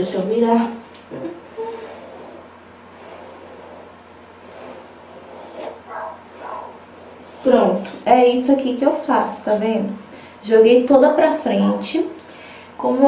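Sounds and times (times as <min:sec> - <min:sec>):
hairbrush rustling through hair: 0:01.8 - 0:07.6.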